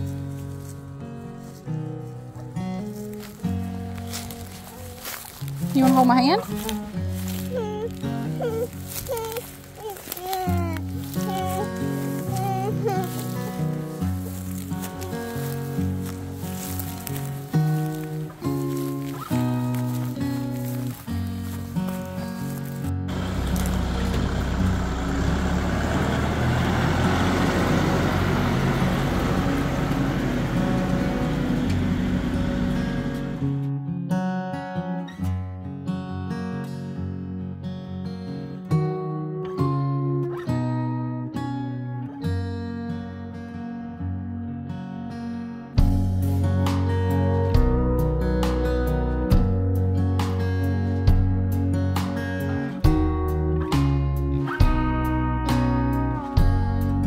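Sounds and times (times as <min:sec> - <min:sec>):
tractor diesel engine running: 0:00.0 - 0:33.5
background music: 0:00.0 - 0:33.6.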